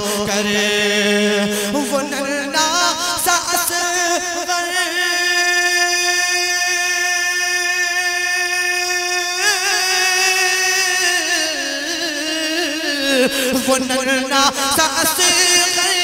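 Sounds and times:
man singing: 0.0s - 16.0s.

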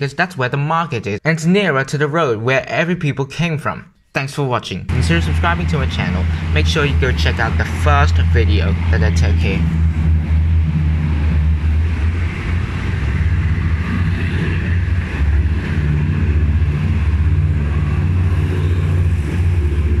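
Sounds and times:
diesel locomotive engine drone: 4.9s - 20.0s
train coaches running on track: 4.9s - 20.0s.

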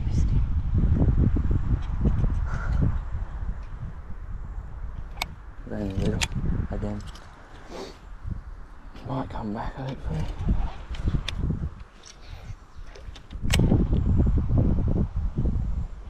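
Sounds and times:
wind rumble: 0.0s - 16.0s
microphone handling: 4.9s - 14.2s.

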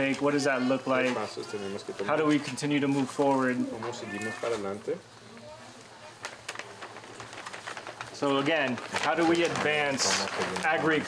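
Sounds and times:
person speaking: 8.2s - 11.0s.

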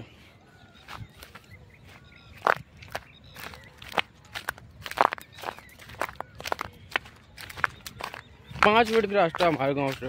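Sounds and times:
footsteps on sandy ground: 0.0s - 10.0s.

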